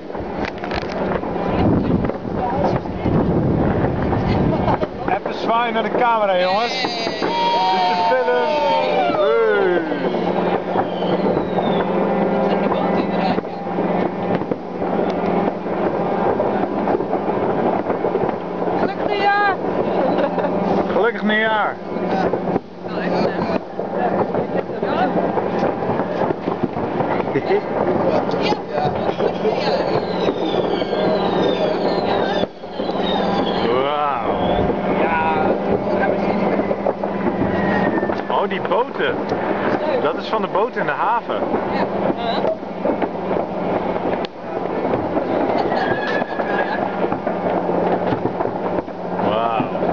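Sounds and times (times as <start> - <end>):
fireworks banging and crackling: 0.0 - 49.9
voices: 1.0 - 49.9.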